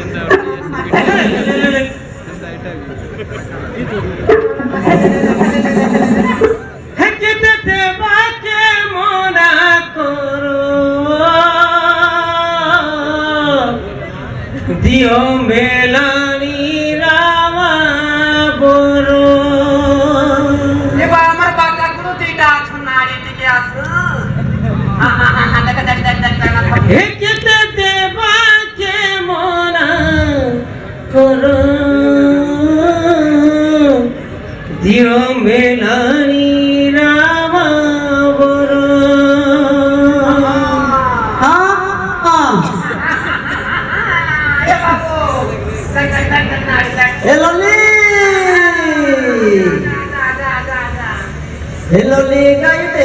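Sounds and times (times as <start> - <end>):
person singing through loudspeakers: 0.0 - 2.3, 4.2 - 14.0, 14.6 - 24.4, 25.0 - 51.2, 51.9 - 53.0.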